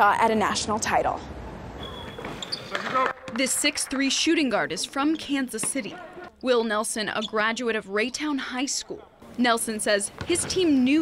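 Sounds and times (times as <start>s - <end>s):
arena room ambience: 0.0s - 11.0s
basketballs bouncing on court: 2.0s - 4.1s, 10.0s - 11.0s.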